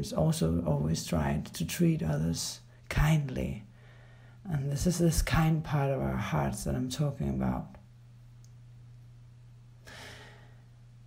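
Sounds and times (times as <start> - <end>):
steady low hum: 0.0 - 11.0
person's soft breath: 3.7 - 4.4, 9.8 - 10.8.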